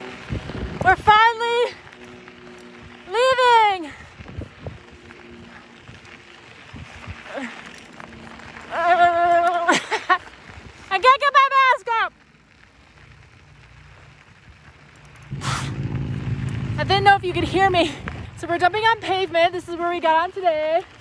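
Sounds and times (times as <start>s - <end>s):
low rushing noise: 15.3s - 18.7s.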